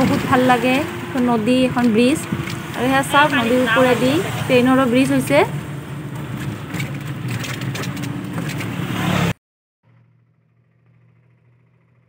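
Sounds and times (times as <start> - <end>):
rickshaw road noise rumble: 0.0 - 12.0
rattles: 6.1 - 8.8.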